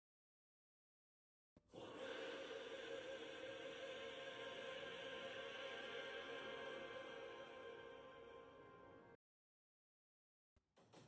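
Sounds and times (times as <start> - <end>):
faint drone-like background music: 1.7 - 9.2.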